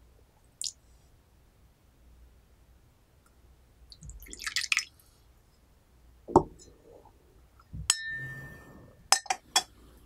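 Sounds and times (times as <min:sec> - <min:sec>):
tea pouring into cup: 0:04.2 - 0:04.9.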